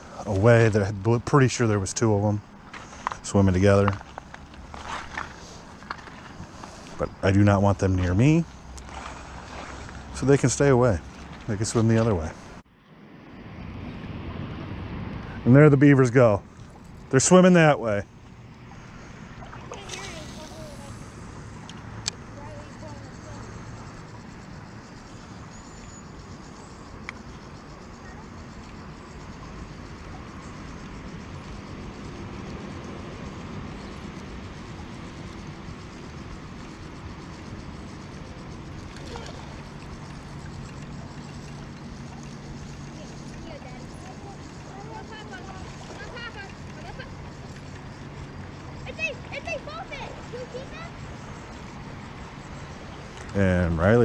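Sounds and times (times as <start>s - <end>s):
river flowing: 0.0s - 13.4s, 14.7s - 25.5s, 26.1s - 54.0s.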